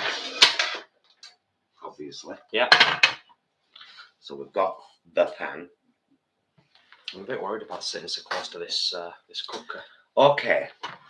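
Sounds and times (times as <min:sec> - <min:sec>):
pan clattering: 0:00.0 - 0:00.8.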